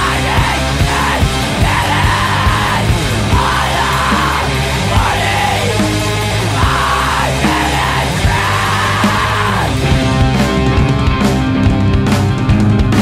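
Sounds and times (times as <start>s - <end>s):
person screaming vocals: 0.0s - 9.9s
distorted guitars: 0.0s - 13.0s
drums: 0.0s - 13.0s.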